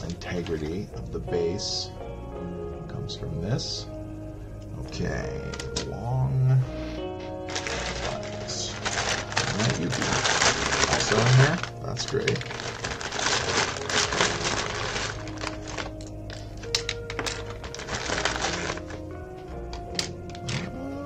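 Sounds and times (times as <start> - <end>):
background music: 0.0 - 21.0
plastic bag crinkling: 7.4 - 19.2
plastic bricks clattering: 7.5 - 19.0.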